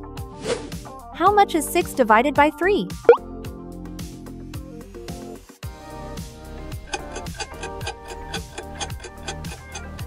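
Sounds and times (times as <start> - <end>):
clock-like ticking: 6.9 - 10.0.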